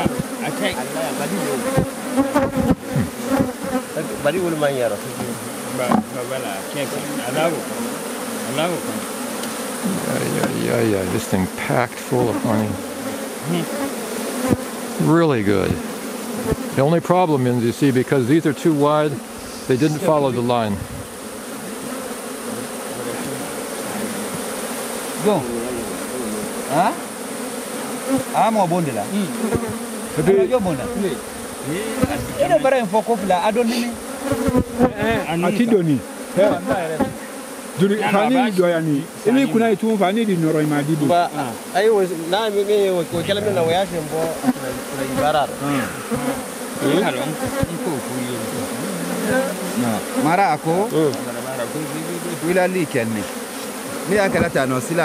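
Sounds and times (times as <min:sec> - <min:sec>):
honeybees buzzing: 0:00.0 - 0:55.0.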